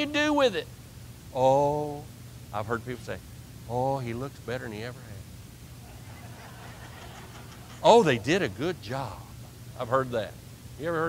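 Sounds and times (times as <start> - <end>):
steady low hum: 0.0 - 11.0
man speaking: 1.4 - 5.2, 7.8 - 11.0.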